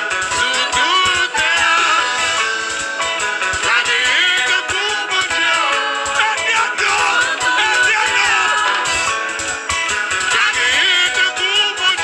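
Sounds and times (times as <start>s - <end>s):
person singing: 0.0s - 9.4s, 10.2s - 12.0s
band music with guitars and keyboard: 0.0s - 12.0s.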